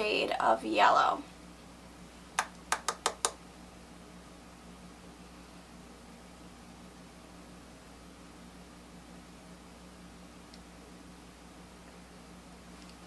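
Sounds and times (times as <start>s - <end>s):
faint low hum: 0.0s - 13.0s
makeup brush tapping palette: 2.4s - 3.4s.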